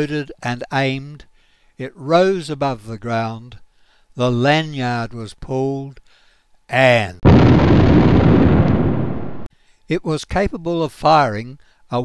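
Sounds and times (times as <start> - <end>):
cannon firing blast: 7.2 - 9.5
long rumble: 7.3 - 9.5.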